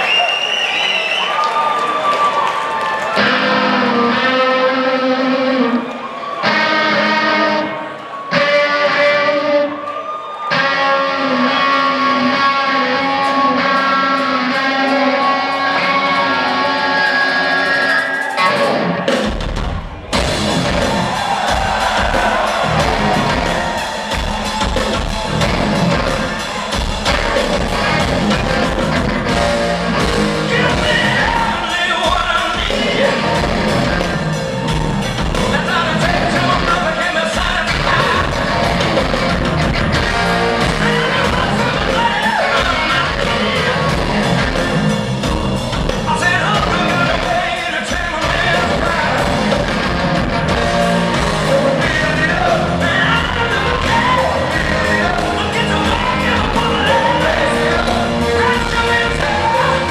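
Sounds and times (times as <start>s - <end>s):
concert crowd cheering: 0.0s - 59.9s
rock band playing live: 1.7s - 59.9s.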